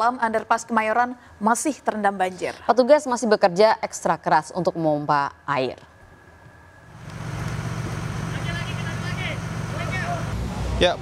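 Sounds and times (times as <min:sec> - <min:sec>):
noisy background: 0:00.0 - 0:11.0
low engine hum: 0:06.9 - 0:11.0.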